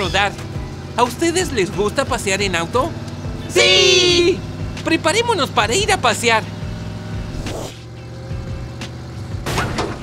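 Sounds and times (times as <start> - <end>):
cartoon car engine humming: 0.0 - 10.0.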